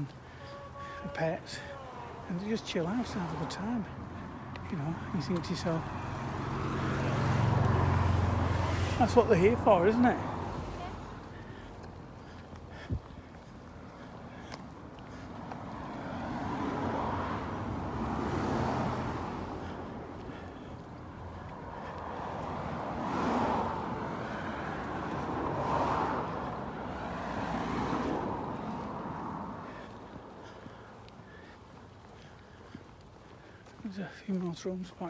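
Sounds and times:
cars passing: 0.0 - 35.0.

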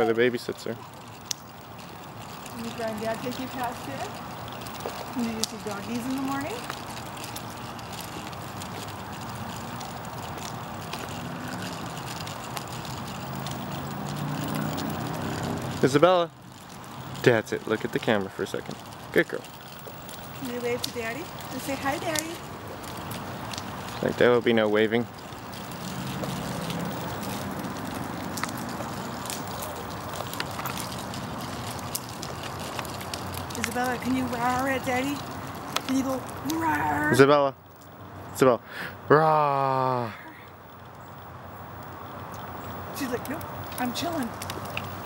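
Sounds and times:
wheel and frame rattles: 0.0 - 38.3, 40.7 - 45.0
low vehicle engine hum: 0.0 - 38.4
stroller wheels rolling on asphalt: 0.0 - 38.6, 39.2 - 45.0.

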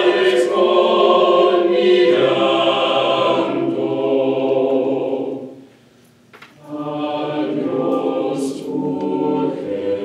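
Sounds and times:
mixed choir singing a cappella: 0.0 - 5.7, 6.6 - 10.0.

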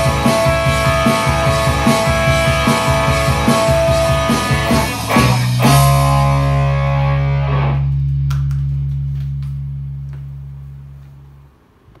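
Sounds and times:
electric guitar chord ringing: 0.0 - 11.5.

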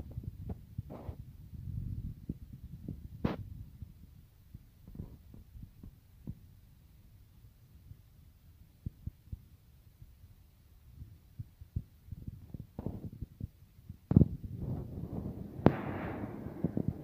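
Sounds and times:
low hum: 14.4 - 17.0.

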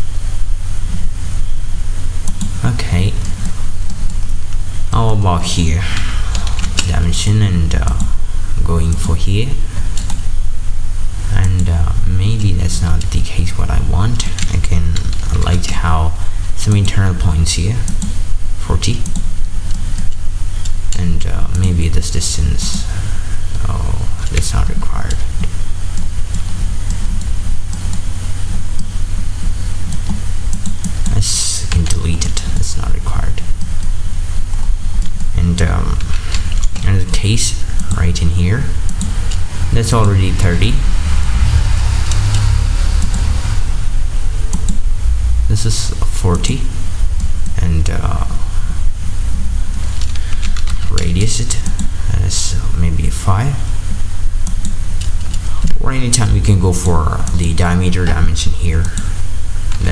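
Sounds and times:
steady low rumble: 0.0 - 16.7, 21.2 - 59.9
computer mouse clicks: 29.9 - 31.0, 38.9 - 39.4
low rumble: 35.6 - 50.8.

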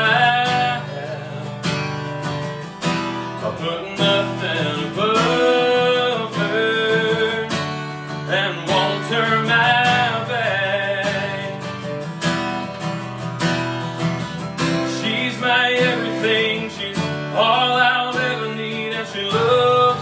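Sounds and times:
man singing country ballad: 0.0 - 12.2, 14.2 - 20.0
acoustic guitar strumming: 0.0 - 20.0.

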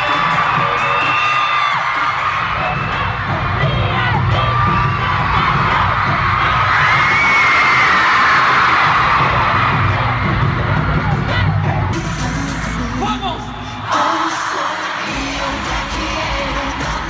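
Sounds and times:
crowd screaming: 0.0 - 11.6
loud pop music with bass beat: 0.0 - 17.0.

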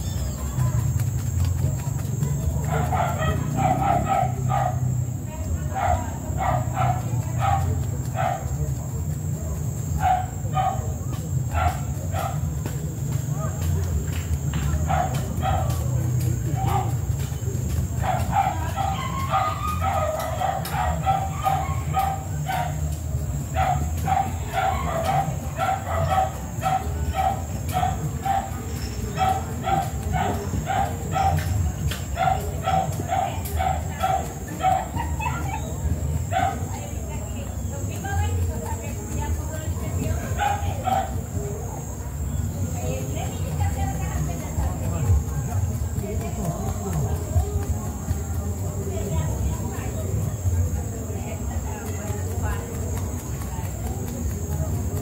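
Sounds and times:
dog barking: 2.6 - 8.9, 9.8 - 12.9, 14.6 - 37.3, 40.2 - 41.6.

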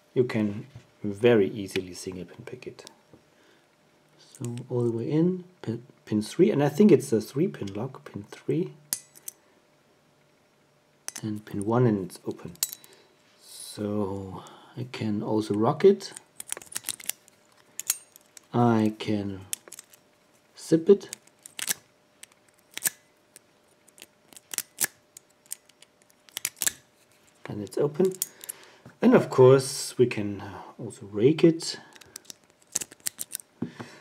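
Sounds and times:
lock pick clicking in lock: 16.4 - 17.2, 21.1 - 23.0, 24.0 - 26.8, 32.0 - 33.4.

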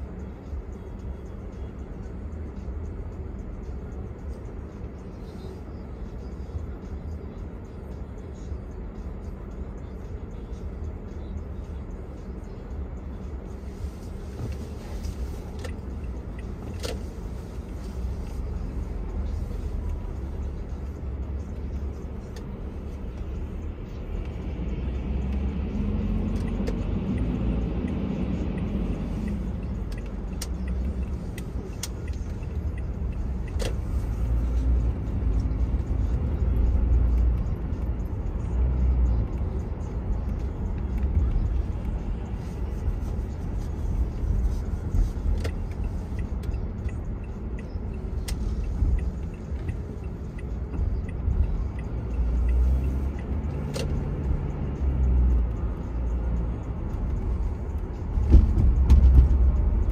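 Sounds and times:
bus engine hum: 0.0 - 59.9
car road and engine rumble: 0.0 - 59.9.

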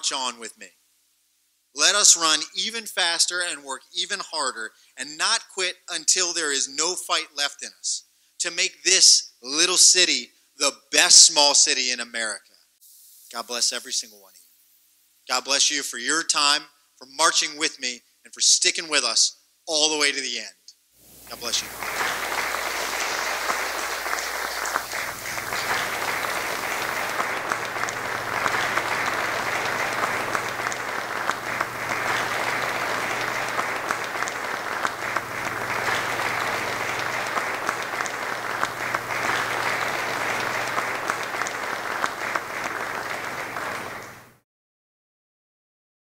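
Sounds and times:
audience applauding: 21.1 - 44.4.

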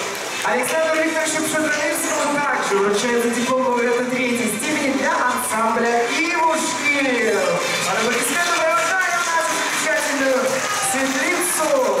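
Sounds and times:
person speaking: 0.4 - 12.0.

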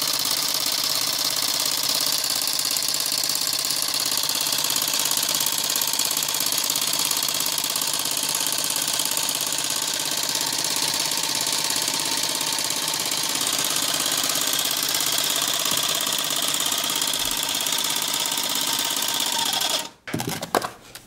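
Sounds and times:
air compressor motor chattering: 0.0 - 20.0.

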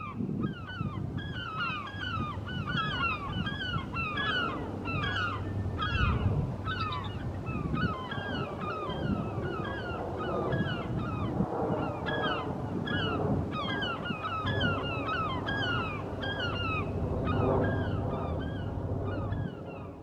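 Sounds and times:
birds chattering: 0.0 - 20.0.

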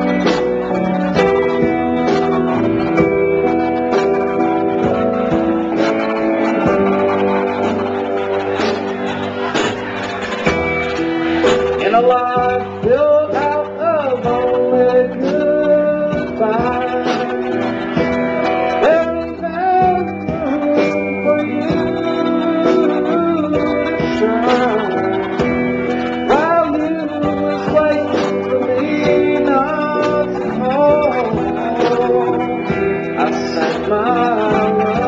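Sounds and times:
electric guitars: 0.0 - 35.0
man singing: 11.6 - 35.0.

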